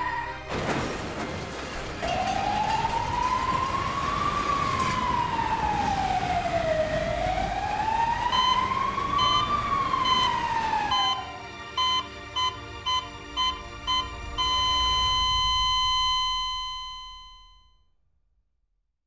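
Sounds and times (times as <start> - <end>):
emergency vehicle siren wailing: 0.0 - 0.5, 2.0 - 17.7
faint electronic beeps: 11.8 - 17.9.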